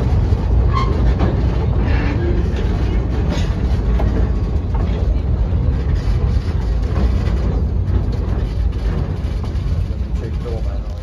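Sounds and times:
train carriage rumbling on track: 0:00.0 - 0:11.0.

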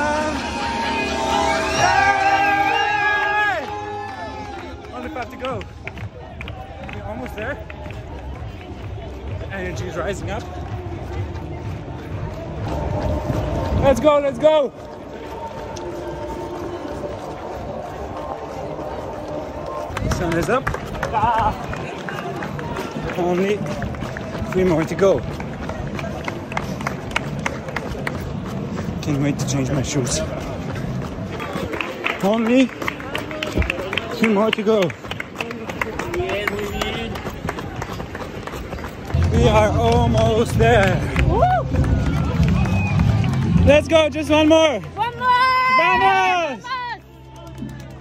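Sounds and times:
people's voices: 0:00.0 - 0:48.0
running footsteps: 0:00.0 - 0:48.0.

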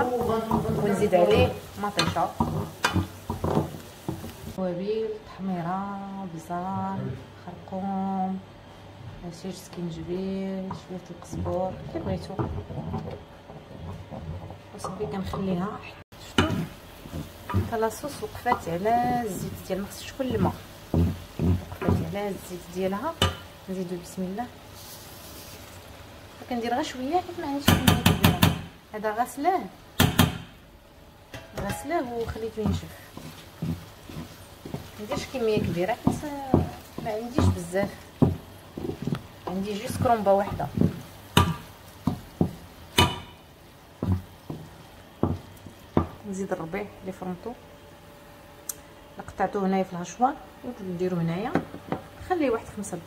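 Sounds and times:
woman talking: 0:00.0 - 0:02.4, 0:04.6 - 0:08.5, 0:09.2 - 0:12.6, 0:14.8 - 0:16.7, 0:17.5 - 0:20.6, 0:21.8 - 0:24.6, 0:26.4 - 0:29.8, 0:31.5 - 0:33.2, 0:34.9 - 0:38.0, 0:39.4 - 0:40.9, 0:46.2 - 0:47.6, 0:49.2 - 0:53.0
wooden spoon stirring in a pot: 0:00.0 - 0:04.6, 0:09.6 - 0:28.3, 0:31.4 - 0:47.0
oil sizzling: 0:00.0 - 0:53.0
utensil knocking on metal colander: 0:31.4 - 0:43.4, 0:44.0 - 0:46.2.

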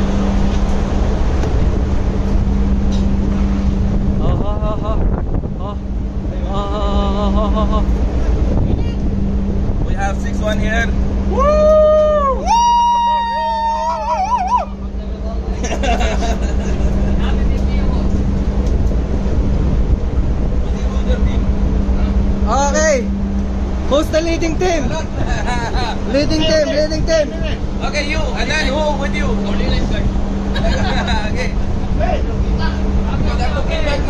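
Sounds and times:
ship engines droning: 0:00.0 - 0:34.0
voices: 0:20.4 - 0:34.0.

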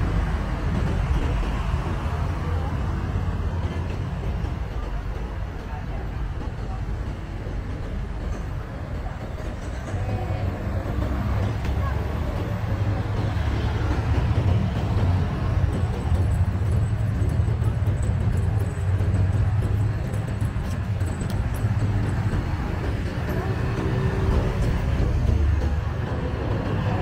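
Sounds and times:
low rumble of traffic: 0:00.0 - 0:27.0
voices of passers-by: 0:00.0 - 0:27.0.

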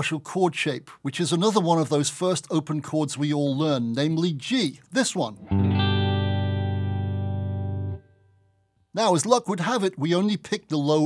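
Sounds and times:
electric guitar chord ringing: 0:05.4 - 0:08.7.

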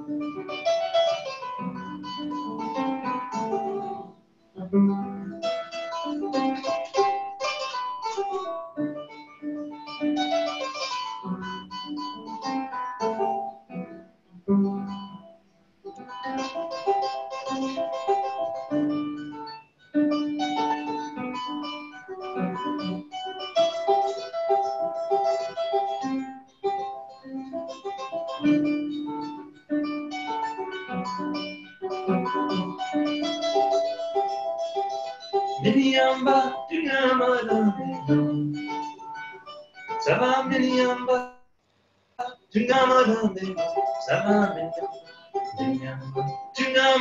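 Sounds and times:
kora plucked harp melody: 0:00.0 - 0:41.3, 0:42.2 - 0:47.0.

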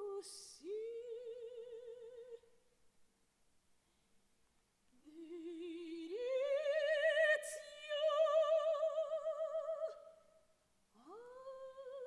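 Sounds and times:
operatic soprano singing: 0:00.0 - 0:02.5, 0:05.0 - 0:10.2, 0:11.0 - 0:12.0.

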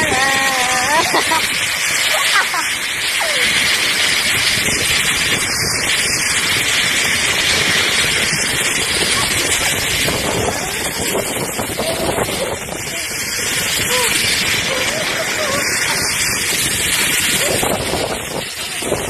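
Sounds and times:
young woman's voice: 0:00.0 - 0:01.3
wind rushing on microphone: 0:00.0 - 0:19.0.

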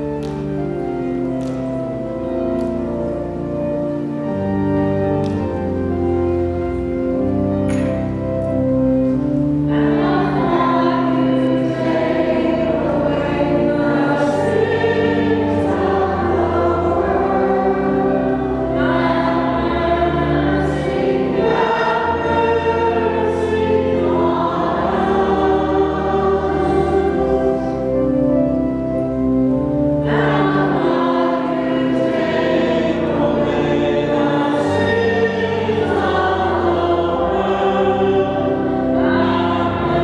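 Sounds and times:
organ chords: 0:00.0 - 0:40.0
choir singing: 0:09.6 - 0:28.7, 0:29.6 - 0:40.0.

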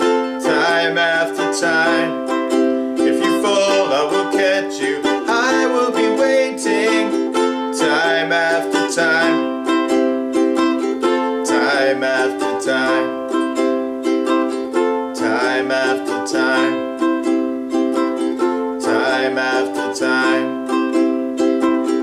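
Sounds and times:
man singing: 0:00.0 - 0:21.0
ukulele strumming: 0:00.0 - 0:22.0.

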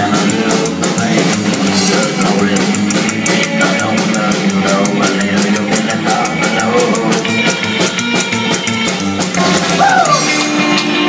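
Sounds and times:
drum kit beat: 0:00.0 - 0:11.0
guitar: 0:00.0 - 0:11.0
rockabilly band playing live: 0:00.0 - 0:11.0.

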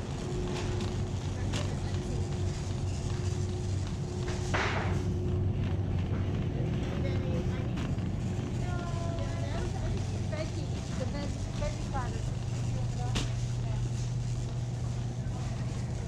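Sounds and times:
constant hum: 0:00.0 - 0:16.0
shopping cart rolling on concrete: 0:00.0 - 0:16.0.

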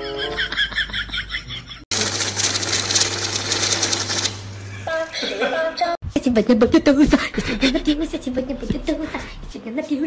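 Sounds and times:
banknotes fluttering: 0:01.9 - 0:04.6
counting machine motor humming: 0:01.9 - 0:04.8.

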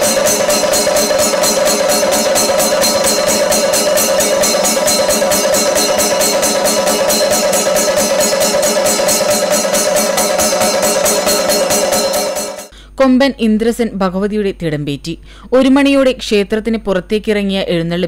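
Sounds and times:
drums beaten with sticks: 0:00.0 - 0:12.7
hand cymbals: 0:00.0 - 0:12.7.

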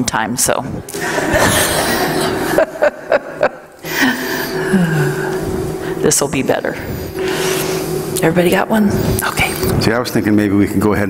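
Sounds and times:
woman laughing: 0:00.9 - 0:05.4
indistinct voices talking: 0:03.8 - 0:10.4.

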